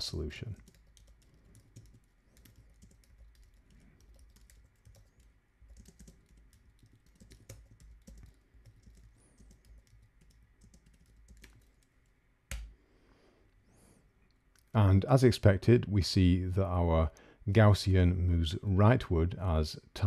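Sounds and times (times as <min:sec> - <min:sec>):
typing on computer keyboard: 0:00.6 - 0:12.7.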